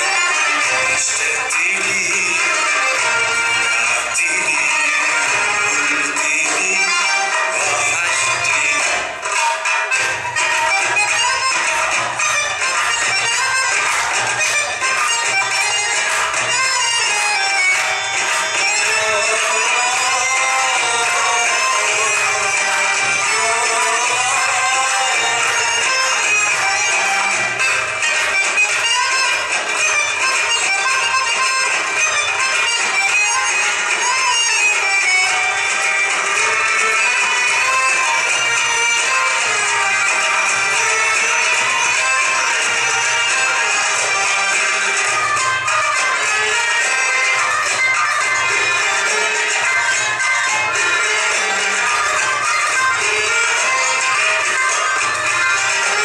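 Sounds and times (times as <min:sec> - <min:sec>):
belly dance music: 0:00.0 - 0:56.0.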